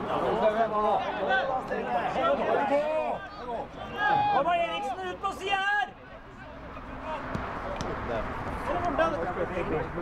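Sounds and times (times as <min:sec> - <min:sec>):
distant shouts of players: 0:00.1 - 0:07.9.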